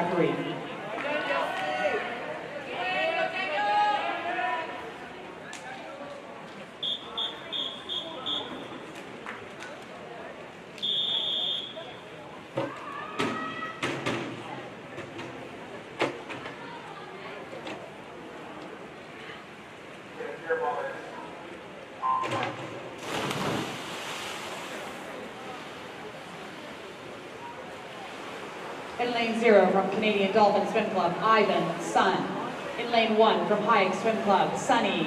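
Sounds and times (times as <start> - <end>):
long whistle blast: 6.8 - 8.6, 10.8 - 11.8
short whistle blasts: 6.8 - 8.7, 10.8 - 11.8.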